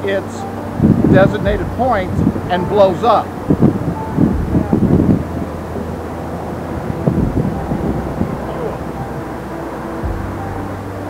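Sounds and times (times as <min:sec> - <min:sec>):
low even hum: 0:00.0 - 0:11.0
wind rumble on microphone: 0:00.0 - 0:11.0.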